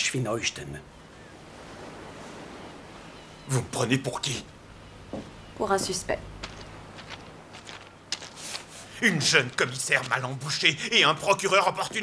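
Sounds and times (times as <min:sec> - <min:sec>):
footsteps walking away: 0:05.1 - 0:12.0.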